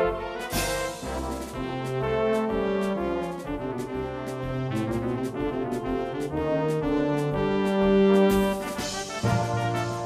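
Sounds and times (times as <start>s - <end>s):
steady drum beat: 0.0s - 10.0s.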